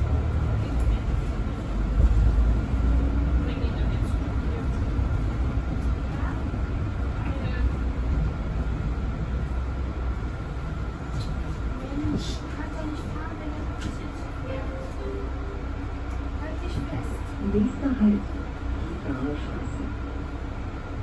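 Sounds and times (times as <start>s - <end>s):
bus engine deep rumble: 0.0s - 21.0s.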